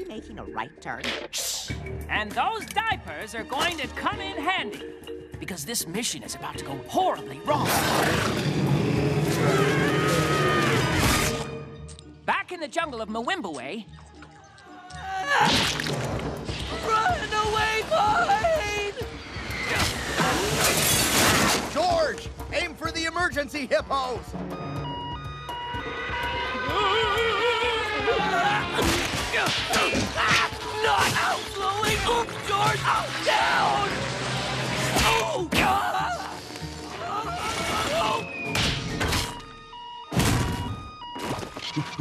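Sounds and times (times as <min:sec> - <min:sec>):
two-tone siren: 0:24.5 - 0:28.7, 0:39.2 - 0:42.0.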